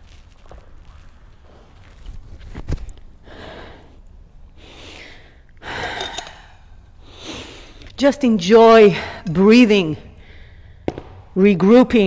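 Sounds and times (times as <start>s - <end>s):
person breathing close to microphone: 3.2s - 7.9s, 10.2s - 10.9s.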